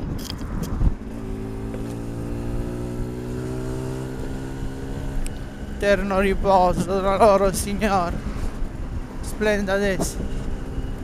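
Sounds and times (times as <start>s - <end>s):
road noise: 0.0s - 11.0s
vehicle engine steady pitch: 0.0s - 11.0s
wind noise: 0.0s - 11.0s.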